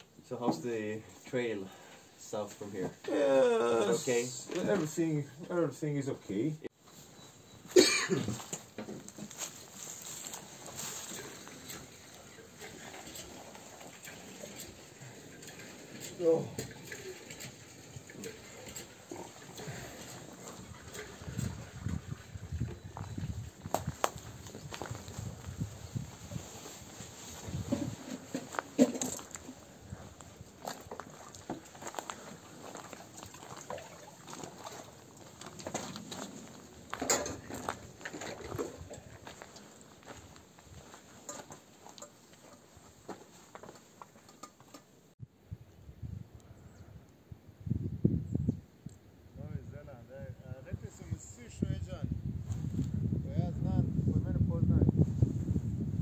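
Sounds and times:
water splashing and sloshing: 9.0s - 22.9s, 26.3s - 45.0s.

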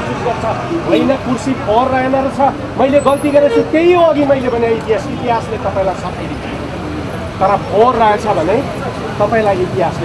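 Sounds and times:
faint outdoor background: 0.0s - 10.0s
person talking emphatically: 0.8s - 6.2s.

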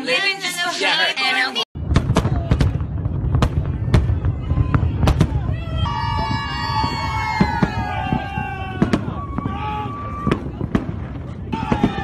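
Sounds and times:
fireworks bangs: 1.8s - 12.0s.

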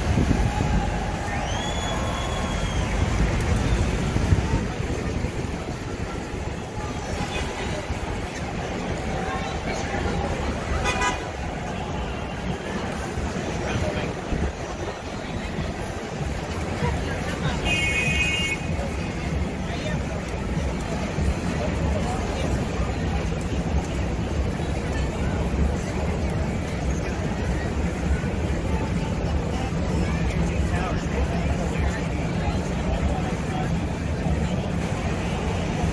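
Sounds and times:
crowd noise: 0.0s - 35.9s
street traffic: 0.0s - 35.9s
car horn toot: 10.8s - 11.2s.

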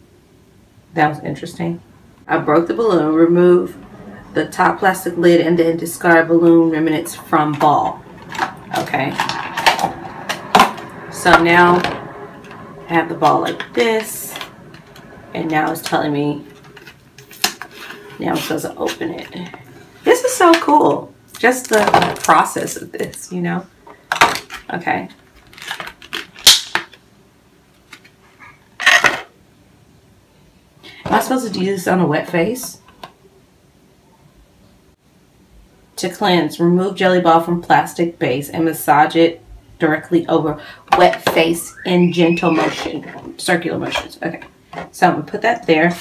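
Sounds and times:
plastic packaging crackling: 21.3s - 23.3s, 24.1s - 27.0s.

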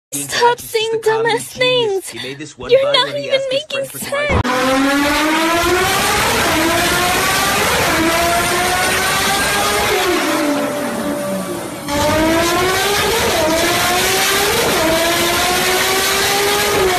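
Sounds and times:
car engine accelerating hard: 4.3s - 16.9s.

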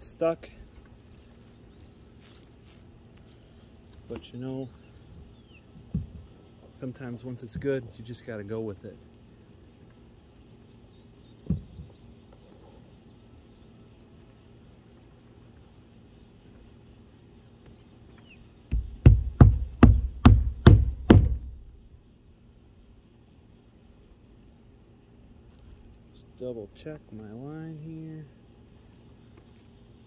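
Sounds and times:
hammer blows on roofing nail: 18.7s - 21.6s.

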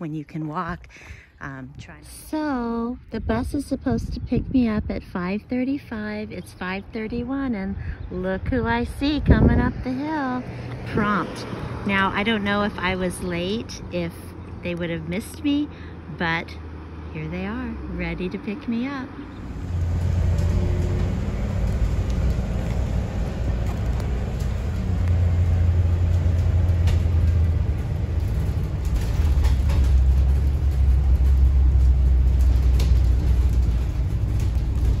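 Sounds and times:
bus engine and road noise: 0.0s - 35.0s
light rattles: 19.3s - 35.0s.

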